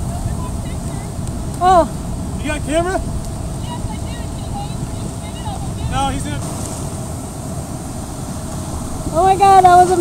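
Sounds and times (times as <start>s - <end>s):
waves breaking: 0.0s - 10.0s
wind: 0.0s - 10.0s.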